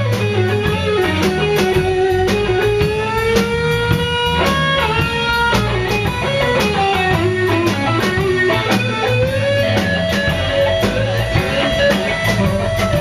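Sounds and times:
blues-rock band playing: 0.0 - 13.0
electric guitar bending lead notes: 0.0 - 13.0.

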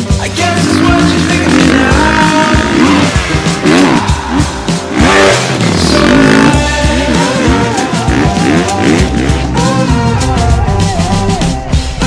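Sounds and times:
motocross bike engine revving: 0.0 - 10.6
music playing: 0.0 - 12.0.

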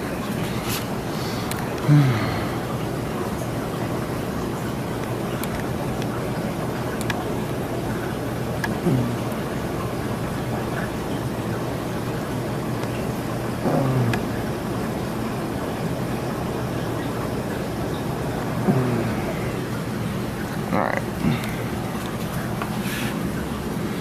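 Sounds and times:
aquarium water rushing: 0.0 - 24.0
low pump hum: 0.0 - 24.0.

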